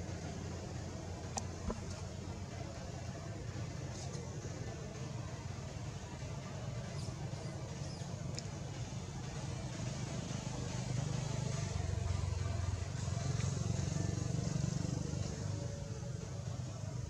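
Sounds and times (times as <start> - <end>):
low engine-like rumble: 0.0 - 17.0.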